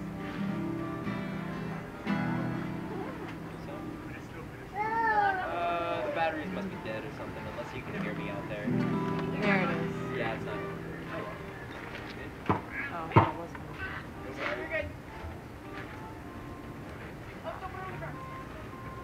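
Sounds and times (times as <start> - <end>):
acoustic guitar strings plucked: 0.0 - 4.6, 6.1 - 14.3.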